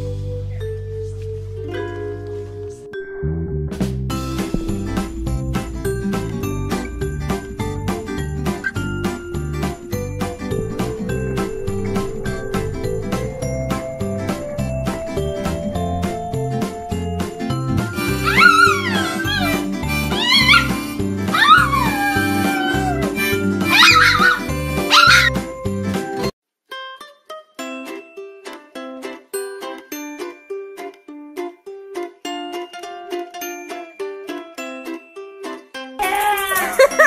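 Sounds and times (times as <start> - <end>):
light plucked background music: 0.0 - 27.0
small dog howling: 18.0 - 25.4.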